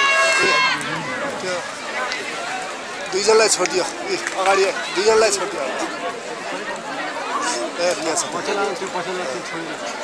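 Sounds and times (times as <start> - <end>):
people talking and chattering: 0.0 - 10.0.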